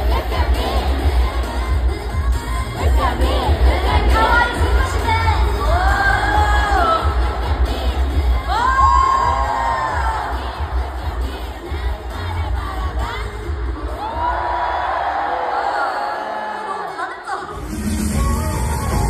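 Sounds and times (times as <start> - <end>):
live pop music with bass beat: 0.0 - 14.9, 17.4 - 19.0
stadium crowd cheering: 8.5 - 11.6, 13.1 - 19.0.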